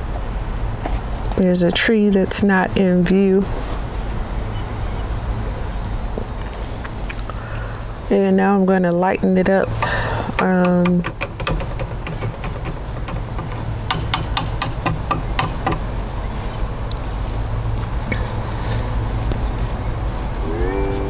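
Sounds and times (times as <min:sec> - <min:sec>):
insects droning: 0:02.6 - 0:21.0.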